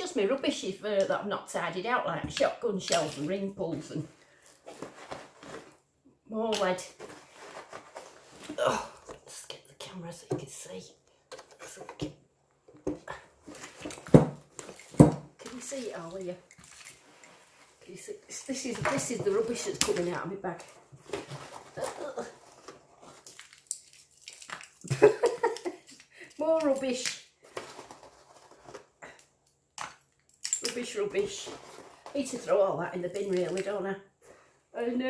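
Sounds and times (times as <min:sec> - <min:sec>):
fabric bag rustling and clatter: 0:04.0 - 0:05.9, 0:06.9 - 0:08.6.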